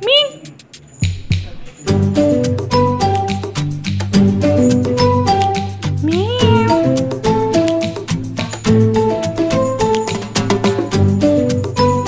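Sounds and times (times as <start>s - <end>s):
background music: 0.0s - 12.0s
cat meowing: 6.0s - 6.9s.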